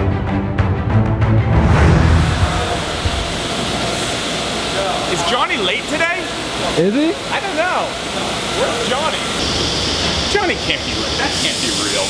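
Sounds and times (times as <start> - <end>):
dust collection blowers: 8.1 - 12.0.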